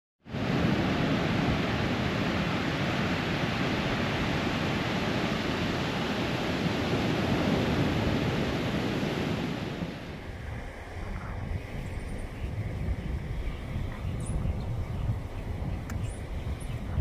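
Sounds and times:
ocean surf on beach: 0.3 - 17.0
wind on microphone: 0.3 - 17.0.

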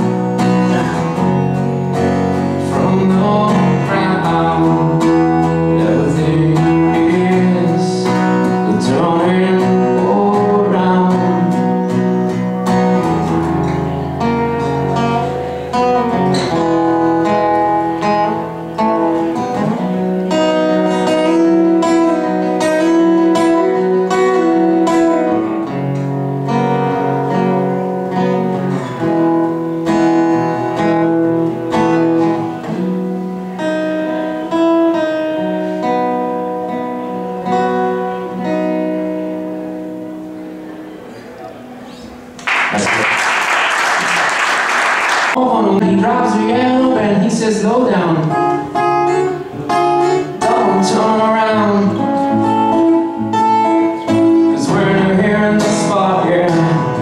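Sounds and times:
acoustic guitar chords: 0.0 - 57.0.

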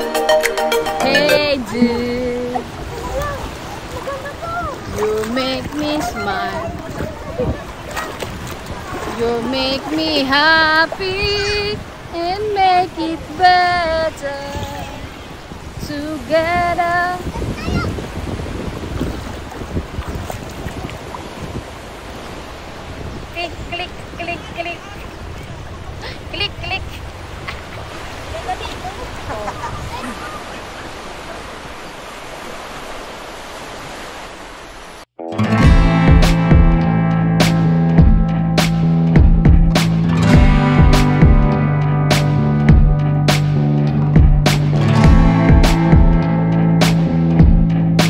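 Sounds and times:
high-pitched singing voices: 0.0 - 3.5, 9.0 - 18.0
gentle surf: 0.0 - 48.0
water rushing: 0.0 - 48.0
wind: 0.0 - 48.0
wind rushing: 14.6 - 30.1.

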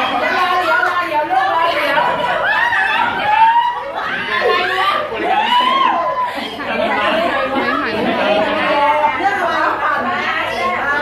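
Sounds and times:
overlapping chatter of people: 0.0 - 11.0.

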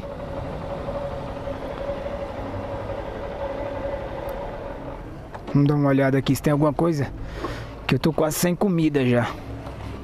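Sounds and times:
motorcycle engine at low revs: 0.0 - 5.6.

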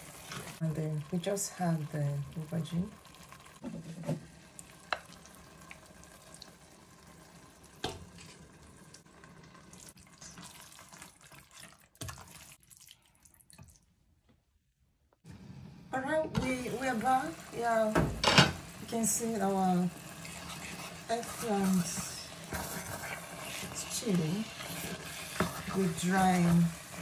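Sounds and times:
spatula stirring stew in pot: 0.0 - 0.6, 18.6 - 27.0.

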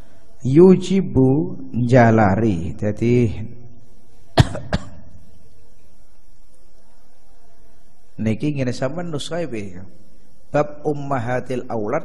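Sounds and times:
person coughing: 4.4 - 5.0.

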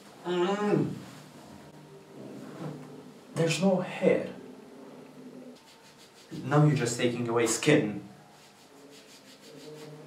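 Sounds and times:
faint low hum: 0.0 - 10.0
hand rubbing wax strip on skin: 5.6 - 6.5, 8.4 - 10.0.

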